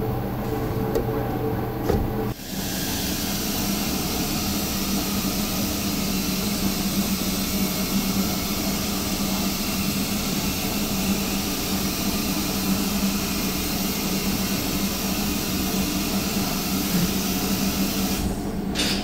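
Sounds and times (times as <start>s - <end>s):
machine hum with hiss: 0.0s - 19.0s.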